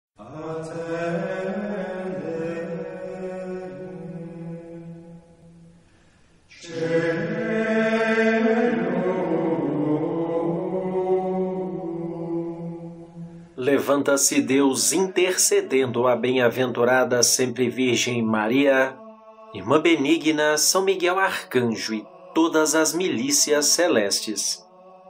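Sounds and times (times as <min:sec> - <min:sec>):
slow vocal chant: 0:00.2 - 0:25.0.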